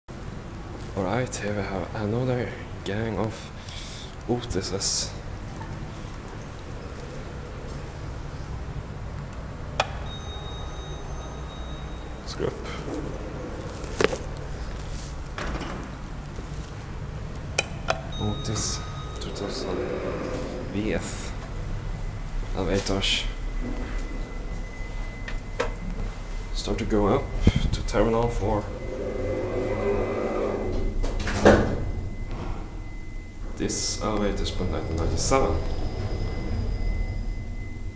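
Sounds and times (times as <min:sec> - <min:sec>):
low machinery hum: 0:00.1 - 0:37.9
elevator chime: 0:09.9 - 0:14.8, 0:17.7 - 0:37.9
elevator clunk: 0:28.6 - 0:37.9.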